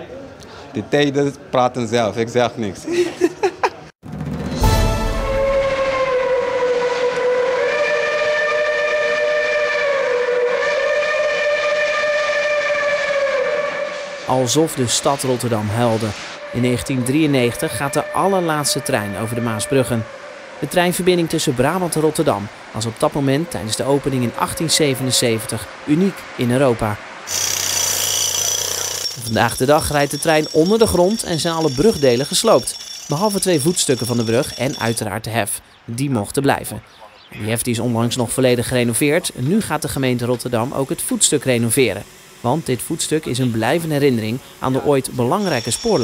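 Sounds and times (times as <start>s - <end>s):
steam whistle blowing: 4.5s - 21.0s, 27.3s - 35.0s, 40.7s - 46.0s
pneumatic hammer chiselling stone: 27.3s - 35.0s, 44.7s - 46.0s.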